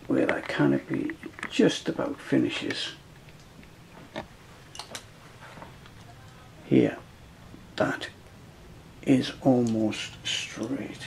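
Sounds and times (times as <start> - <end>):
faint low hum: 0.0 - 11.0.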